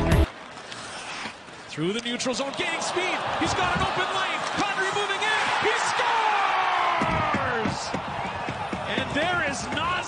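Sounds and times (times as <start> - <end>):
skate blades scraping ice: 0.3 - 2.8
arena crowd: 2.2 - 10.0.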